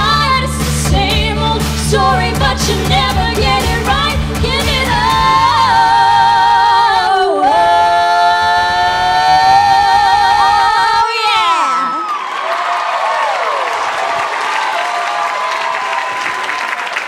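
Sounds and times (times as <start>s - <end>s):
backing track with beat: 0.0s - 5.5s
women singing pop duet: 0.0s - 12.0s.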